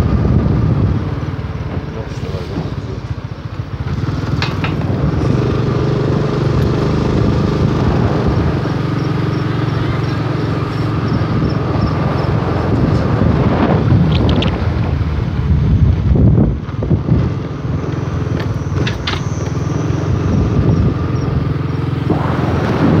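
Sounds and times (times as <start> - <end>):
vehicle engine running: 0.0 - 23.0
wind noise on microphone: 0.0 - 23.0.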